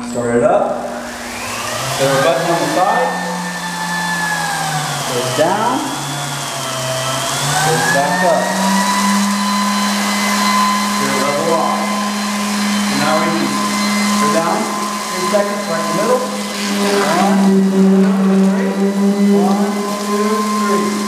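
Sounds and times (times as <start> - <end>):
concrete vibrator humming: 0.0 - 21.0.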